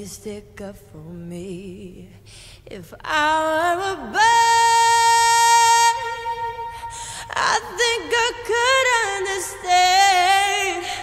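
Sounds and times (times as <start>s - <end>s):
woman singing high note: 4.2s - 11.0s.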